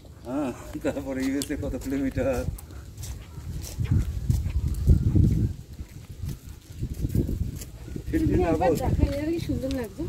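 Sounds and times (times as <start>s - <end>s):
footsteps on brick path: 0.0s - 10.0s.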